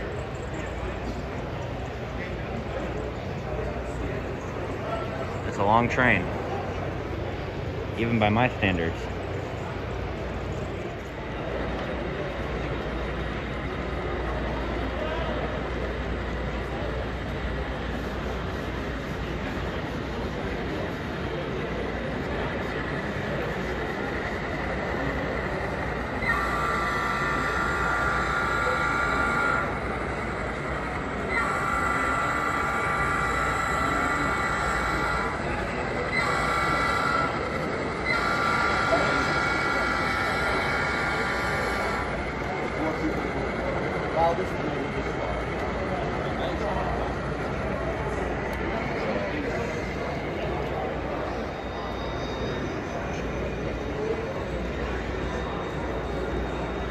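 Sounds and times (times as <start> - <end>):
hall chatter: 0.0 - 56.9.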